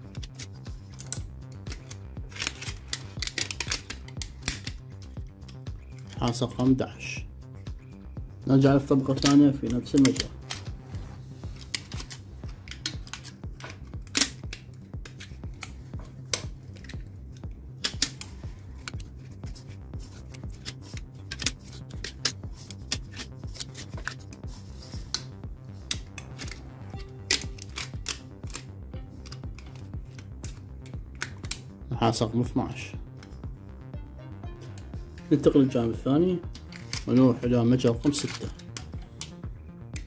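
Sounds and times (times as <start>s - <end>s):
wire clicking into slots: 0.0s - 6.7s, 9.0s - 10.7s, 11.5s - 31.8s, 36.5s - 40.0s
soft background music: 0.0s - 40.0s.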